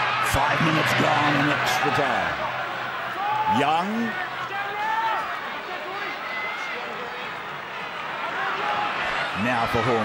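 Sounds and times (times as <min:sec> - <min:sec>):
crowd shouts: 0:00.0 - 0:10.0
stadium crowd voices: 0:00.0 - 0:10.0.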